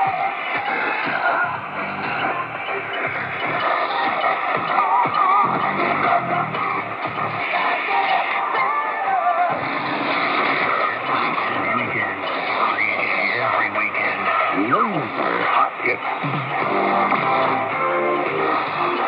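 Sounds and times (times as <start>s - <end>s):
muffled radio music with vocals: 0.0s - 19.0s.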